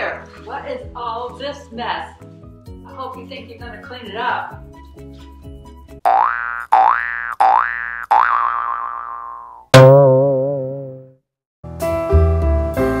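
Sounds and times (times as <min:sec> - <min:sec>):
cartoon boing sound effects: 0:06.1 - 0:11.2.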